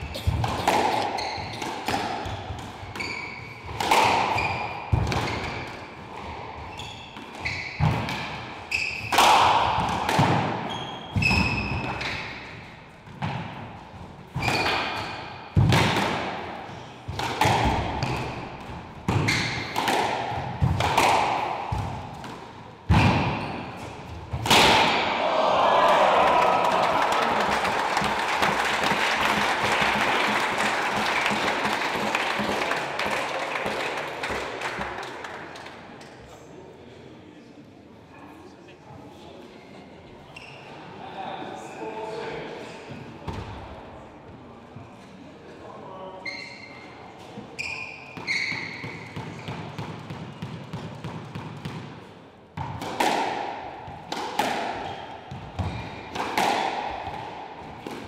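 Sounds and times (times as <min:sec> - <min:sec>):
squash ball hits echoing: 0:00.0 - 0:35.7, 0:48.1 - 0:58.0
shoe squeaks on hardwood floor: 0:01.0 - 0:03.7, 0:04.3 - 0:05.7, 0:06.6 - 0:07.8, 0:08.7 - 0:09.1, 0:10.7 - 0:12.2, 0:14.4 - 0:14.7, 0:40.3 - 0:40.7, 0:46.2 - 0:49.1
audience applauding: 0:25.7 - 0:35.4.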